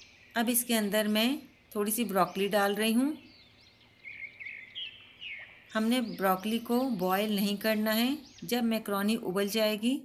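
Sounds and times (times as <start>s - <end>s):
bird chirping: 0.0s - 10.0s.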